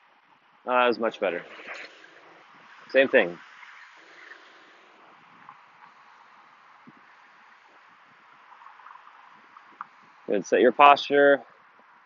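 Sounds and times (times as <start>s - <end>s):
soft steady hiss: 0.0s - 12.0s.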